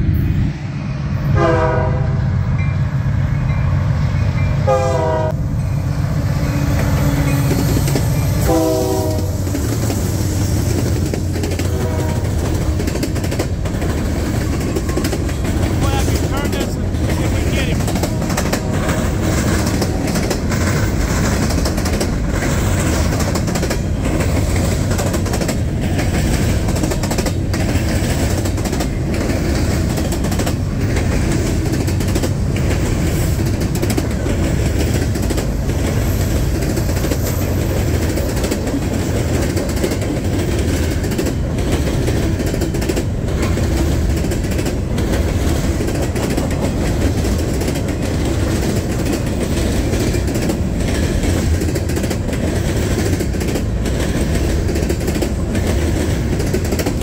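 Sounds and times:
diesel locomotive engine passing: 0.0s - 57.0s
train wheels rumbling: 0.0s - 57.0s
wheels clacking over rail joints: 4.4s - 57.0s.

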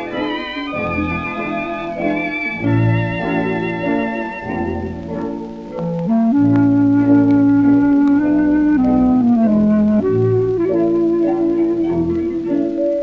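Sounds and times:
record surface clicks: 4.8s - 13.0s.

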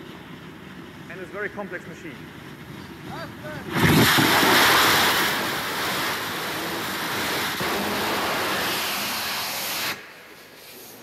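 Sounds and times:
rocket engine roaring: 2.6s - 10.0s.

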